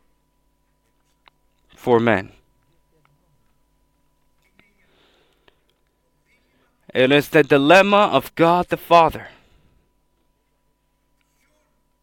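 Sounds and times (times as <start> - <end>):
faint steady tone: 0.0 - 12.0
man speaking: 1.7 - 2.4, 6.9 - 9.4
soft breath: 4.6 - 6.8, 9.3 - 10.0.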